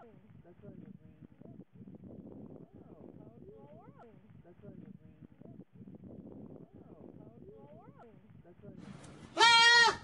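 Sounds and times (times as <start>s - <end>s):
goat bleating: 9.4s - 10.0s.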